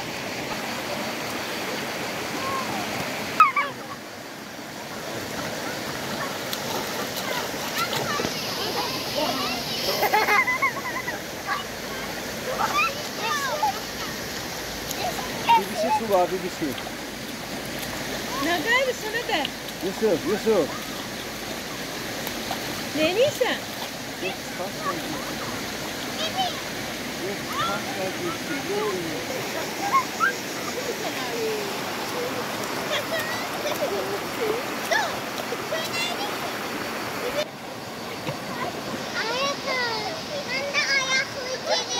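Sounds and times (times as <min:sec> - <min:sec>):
river rushing: 0:00.0 - 0:41.9.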